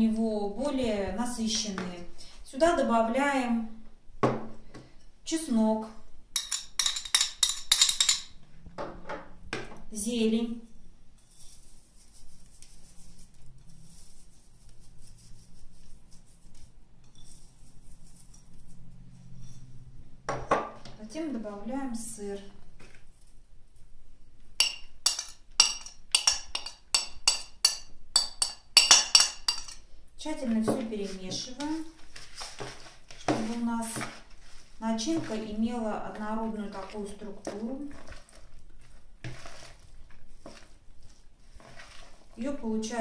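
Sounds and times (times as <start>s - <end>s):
metal spoon scraping ceramic dish: 17.0s - 19.9s, 24.6s - 29.9s.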